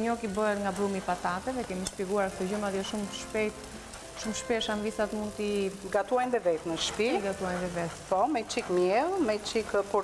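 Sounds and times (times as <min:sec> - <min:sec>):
woman talking: 0:00.0 - 0:03.6, 0:04.2 - 0:10.0
gnocchi sizzling in a frying pan: 0:00.0 - 0:10.0.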